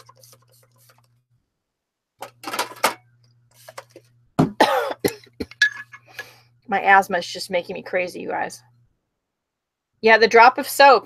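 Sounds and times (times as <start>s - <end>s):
woman coughing harshly: 4.4s - 5.6s.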